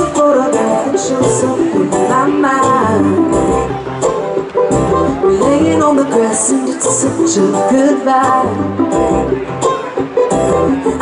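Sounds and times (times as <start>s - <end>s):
plucked upright bass: 0.0s - 11.0s
strummed acoustic guitar: 0.0s - 11.0s.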